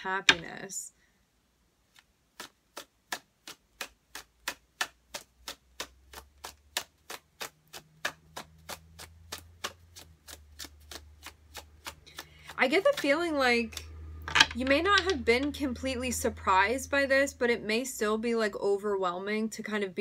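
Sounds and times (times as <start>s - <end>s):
cards being shuffled: 1.9s - 15.5s.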